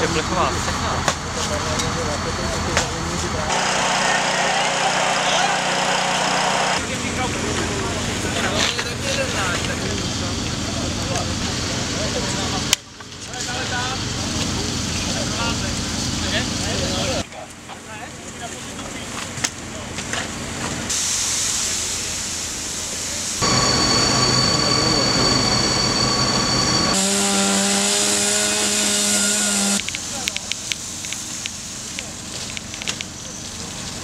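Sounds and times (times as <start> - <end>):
hissing water spray and steam: 20.6 - 27.0, 28.9 - 34.0.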